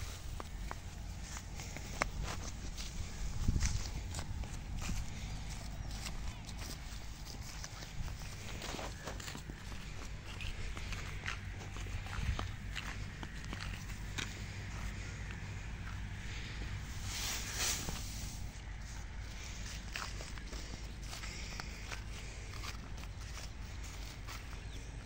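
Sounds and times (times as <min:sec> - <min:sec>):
straw bundle rustling: 0:00.0 - 0:12.9, 0:16.1 - 0:25.0
footsteps on dry straw: 0:00.0 - 0:25.0.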